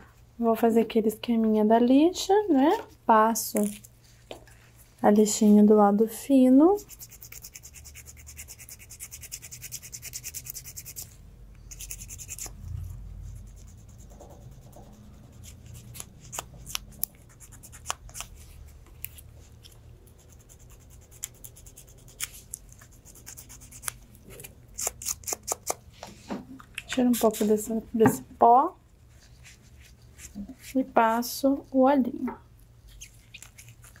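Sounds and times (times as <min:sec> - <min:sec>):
nail file rasping on toenail: 0:06.8 - 0:12.6, 0:13.3 - 0:18.4, 0:19.6 - 0:25.8, 0:33.0 - 0:34.0.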